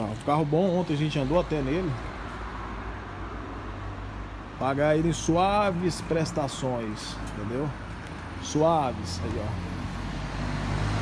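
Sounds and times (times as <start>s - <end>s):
city street rumble and hiss: 0.0s - 11.0s.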